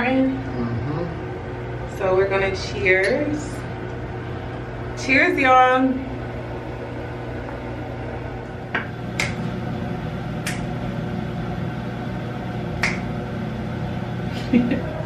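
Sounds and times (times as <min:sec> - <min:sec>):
low room hum: 0:00.0 - 0:15.0
sharp snaps: 0:09.2 - 0:09.4, 0:10.4 - 0:10.7, 0:12.8 - 0:13.1.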